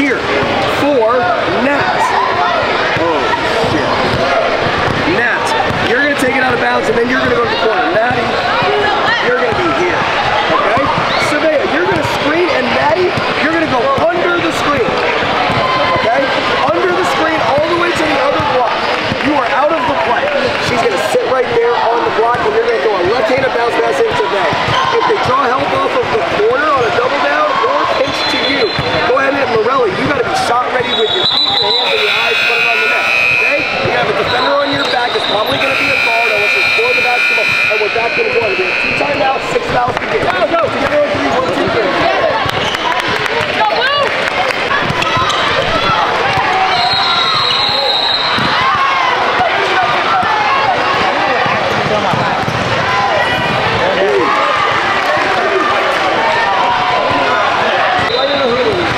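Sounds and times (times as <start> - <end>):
basketballs bouncing on hardwood: 3.7 - 7.3, 8.0 - 11.2, 13.1 - 16.2, 44.7 - 46.7, 47.7 - 48.8, 50.1 - 52.8
overlapping voices: 24.2 - 58.9
steady buzzer: 31.7 - 33.8, 35.4 - 39.4.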